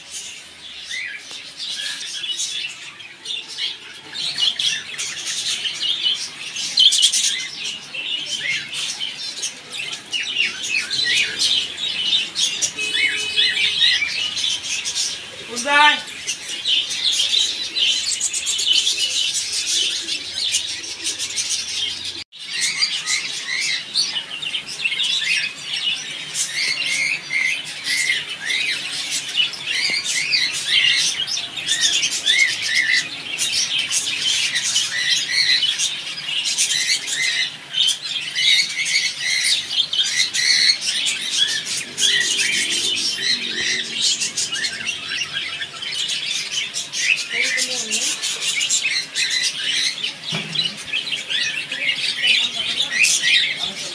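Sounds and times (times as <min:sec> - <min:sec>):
caged birds chirping: 0:00.0 - 0:53.9.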